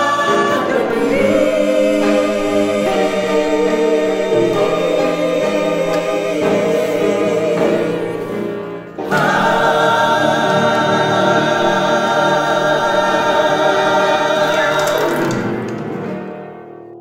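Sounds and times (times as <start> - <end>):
mixed choir singing in harmony: 0.0 - 15.8
piano accompaniment: 0.0 - 17.0.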